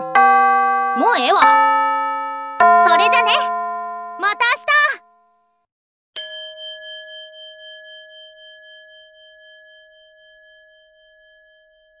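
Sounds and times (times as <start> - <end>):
bell-like chime ringing: 0.0 - 5.5, 6.2 - 12.0.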